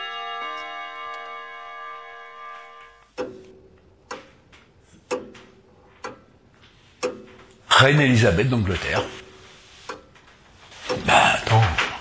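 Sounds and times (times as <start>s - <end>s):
held musical chord: 0.0s - 3.2s
clock ticking: 2.4s - 12.0s.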